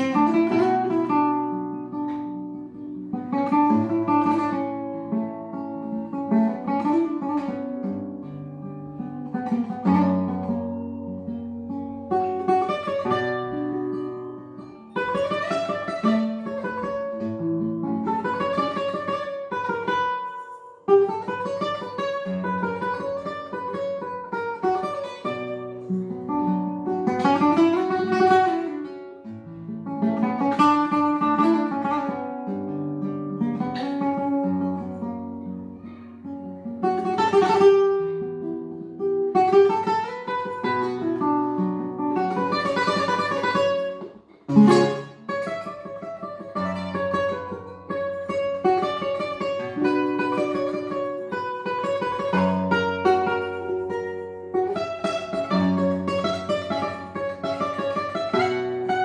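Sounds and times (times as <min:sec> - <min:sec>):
classical guitar fingerpicking: 0:00.0 - 0:59.0.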